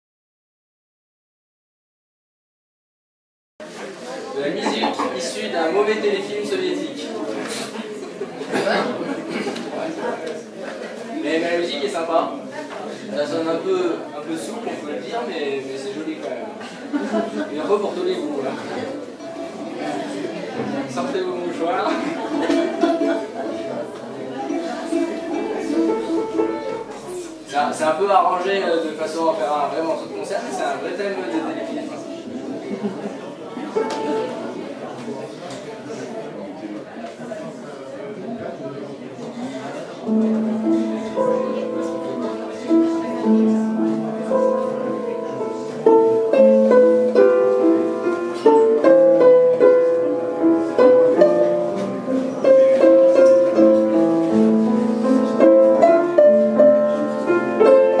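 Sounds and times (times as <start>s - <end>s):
balalaika: 21.9s - 27.3s, 40.1s - 58.0s
piano: 22.1s - 27.5s, 33.7s - 34.6s, 40.0s - 58.0s.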